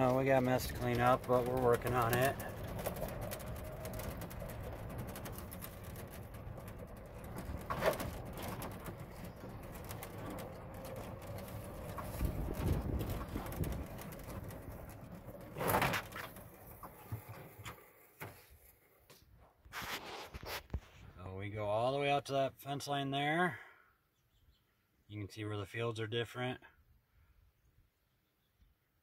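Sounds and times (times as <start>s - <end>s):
electric golf cart rumbling and rattling: 0.0s - 18.2s.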